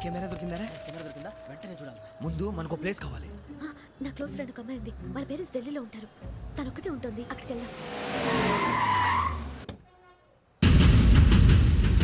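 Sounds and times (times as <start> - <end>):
car tyres screeching: 7.1 - 9.7
music with heavy drum beats: 10.6 - 12.0.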